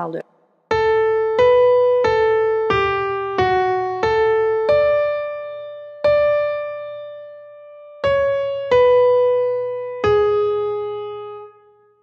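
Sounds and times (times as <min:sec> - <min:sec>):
slow piano melody: 0:00.7 - 0:12.0.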